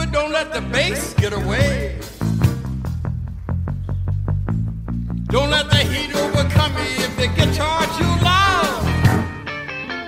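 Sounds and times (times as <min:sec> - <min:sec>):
rock and roll instrumental: 0:00.0 - 0:10.0.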